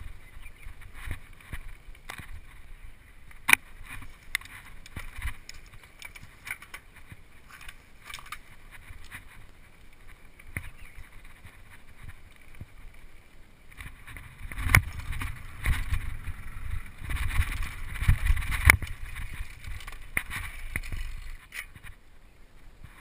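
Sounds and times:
bike rattling over bumps: 0.0s - 22.0s
wind and ground rumble: 0.0s - 23.0s.

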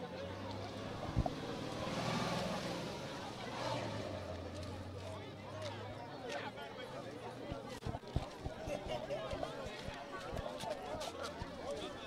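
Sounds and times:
murmur of outdoor crowd: 0.0s - 12.0s.

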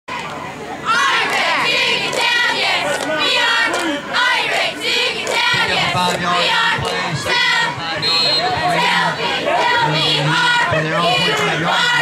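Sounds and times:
cheerleaders chanting: 0.1s - 12.0s
crowd murmur: 0.1s - 12.0s.

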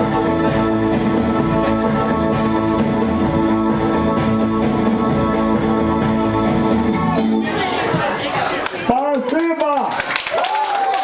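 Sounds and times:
keyboard sustaining a chord: 0.0s - 7.5s.

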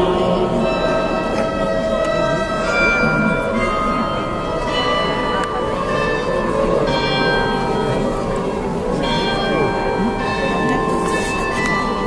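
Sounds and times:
church bells ringing: 0.0s - 12.0s
crowd murmuring: 0.0s - 12.0s.

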